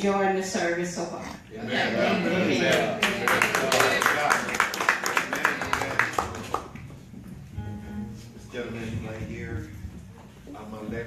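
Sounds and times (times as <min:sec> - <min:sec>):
congregation clapping: 0:02.6 - 0:07.2.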